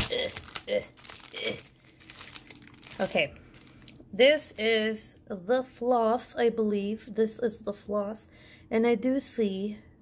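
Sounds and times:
plastic bag crinkling: 0.0 - 4.0.

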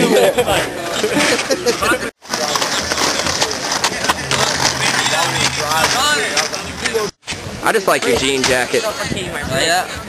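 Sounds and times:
skateboard wheels rolling on concrete: 0.0 - 10.0.

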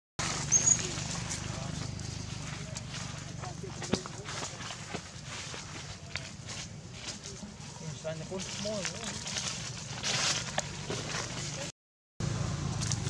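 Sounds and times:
rustles in dry leaves: 0.2 - 13.0
steady low hum: 0.2 - 13.0.

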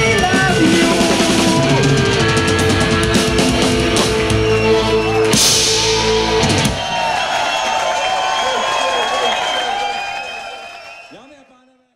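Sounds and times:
rock band playing: 0.0 - 10.8
crowd cheering and clapping: 1.0 - 11.7.

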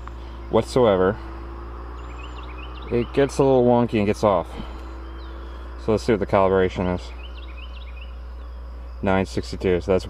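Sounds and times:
small bird chirping: 0.0 - 10.0
steady low hum: 0.0 - 10.0.

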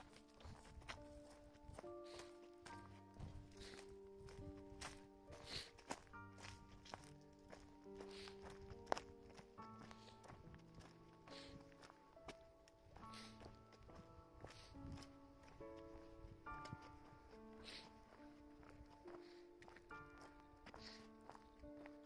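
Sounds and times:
footsteps on rocky dirt trail: 0.0 - 22.0
soft instrumental music: 0.0 - 22.0.

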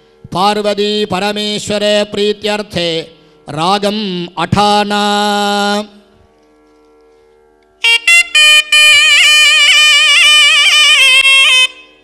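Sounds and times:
reed wind instrument sustained note: 7.8 - 12.0.

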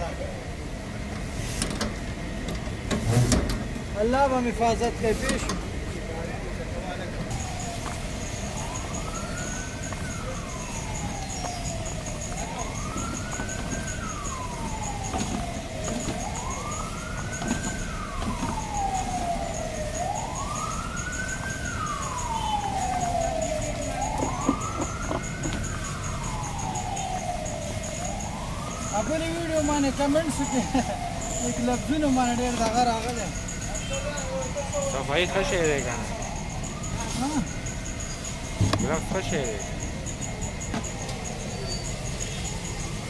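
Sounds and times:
steady background noise: 0.0 - 43.0
wailing siren: 3.6 - 43.0.

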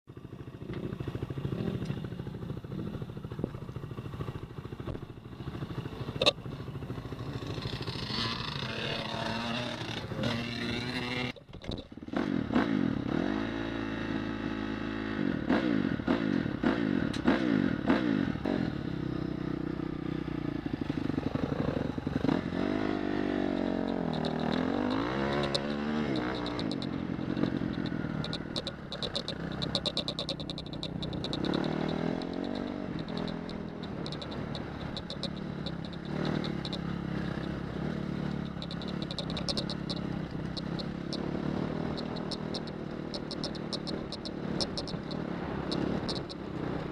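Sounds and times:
motorcycle engine revving: 0.1 - 46.9
light ticking and clattering: 23.4 - 37.6, 38.2 - 46.9.

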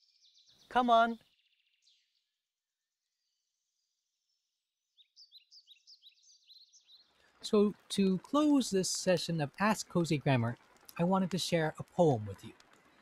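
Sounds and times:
small bird chirping: 3.1 - 7.3.

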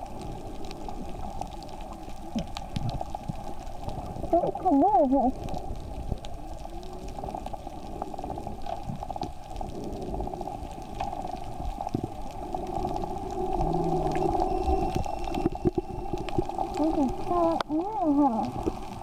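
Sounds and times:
muffled underwater rushing water: 0.0 - 19.0
small clicks and pops: 0.0 - 19.0.

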